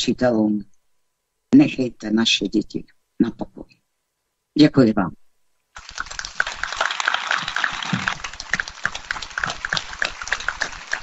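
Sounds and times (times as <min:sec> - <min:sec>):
audience applauding: 0:05.8 - 0:11.0.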